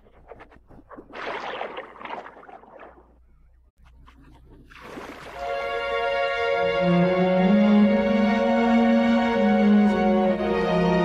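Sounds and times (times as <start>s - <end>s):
orchestral soundtrack music: 5.4s - 11.0s.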